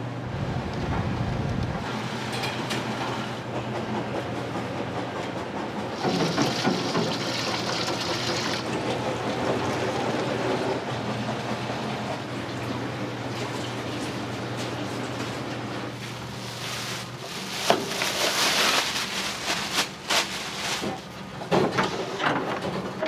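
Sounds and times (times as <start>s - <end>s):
constant low hum: 0.0s - 6.0s
gas burners and extraction roar: 0.0s - 23.0s.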